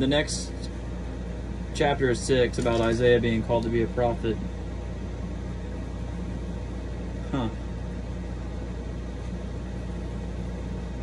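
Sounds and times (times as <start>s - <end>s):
low machine hum: 0.0s - 11.0s
person saying huh: 7.2s - 7.7s.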